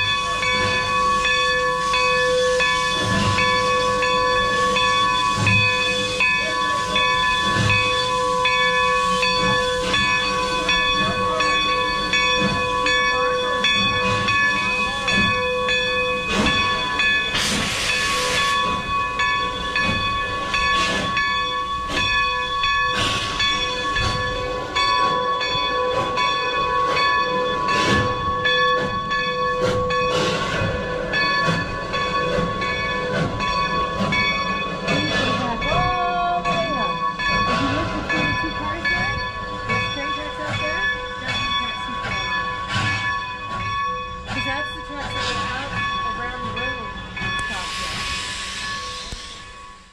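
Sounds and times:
high ringing tone: 0.0s - 49.9s
steam hissing: 0.0s - 49.9s
steam locomotive chuffing: 0.0s - 49.9s
train rumble: 0.0s - 49.9s.

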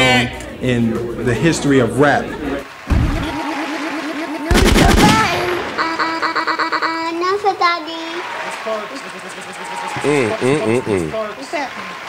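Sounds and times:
electronic thump: 2.9s - 3.3s
rapid shot-like crackles: 4.5s - 6.0s.

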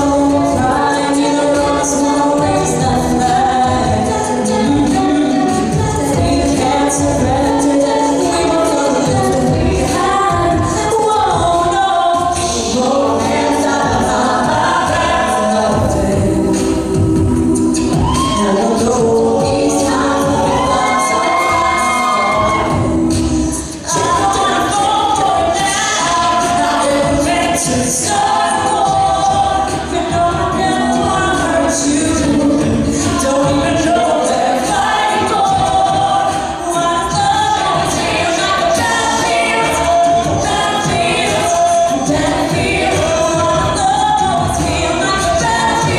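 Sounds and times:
layered backing voices: 0.0s - 45.9s
woman singing lead: 0.0s - 45.9s.

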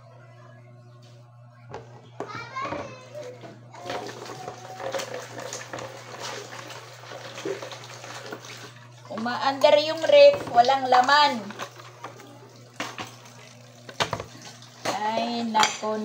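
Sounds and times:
steady low hum: 0.0s - 4.7s
water splashing in a plastic basin: 3.8s - 15.1s
woman speaking: 9.1s - 11.6s, 14.8s - 16.0s.

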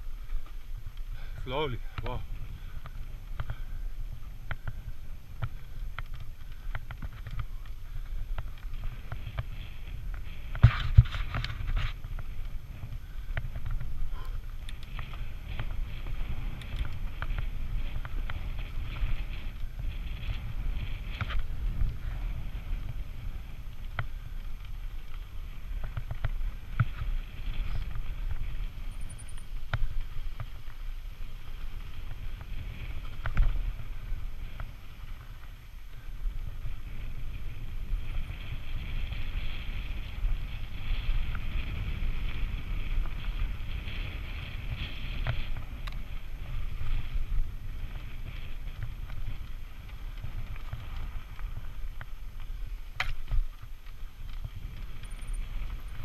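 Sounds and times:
bike clicks and rattles: 0.0s - 56.0s
bike tyres on dirt: 0.0s - 56.0s
wind rumble on microphone: 0.0s - 56.0s.

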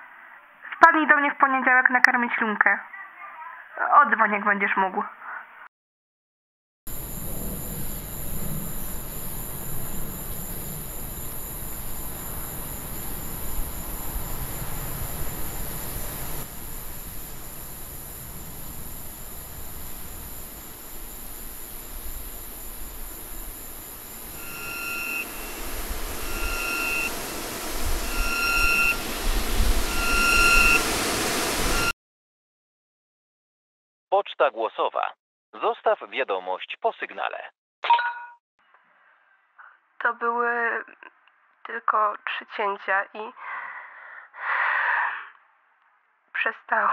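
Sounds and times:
dark noisy ambient drone: 6.9s - 31.9s
low rumble: 6.9s - 31.9s
repeating electronic beep: 24.3s - 31.1s.

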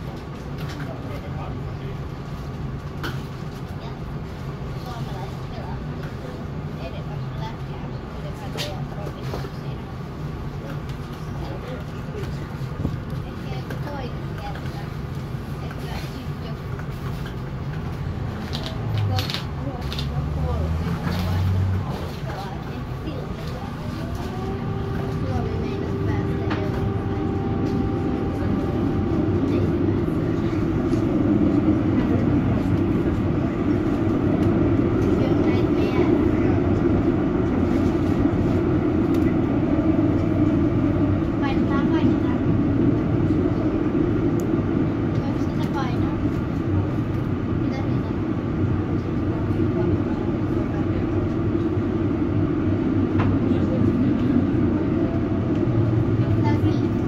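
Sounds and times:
tram wheels rumbling on rails: 0.0s - 57.0s.

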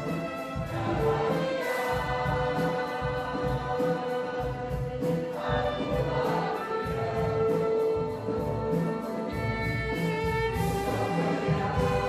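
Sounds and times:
choir singing: 0.0s - 12.0s
string orchestra: 0.0s - 12.0s.

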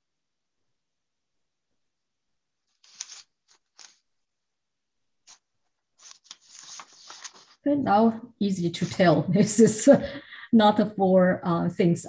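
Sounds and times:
brush scraping across paper: 2.6s - 4.1s, 5.2s - 7.7s.

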